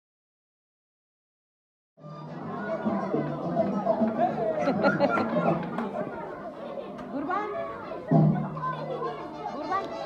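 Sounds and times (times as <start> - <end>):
many people chattering: 2.0 - 10.0.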